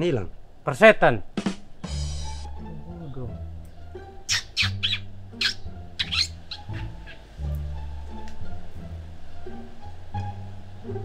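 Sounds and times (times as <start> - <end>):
background music: 1.2 - 11.0
high bird-like chirps: 4.2 - 7.3.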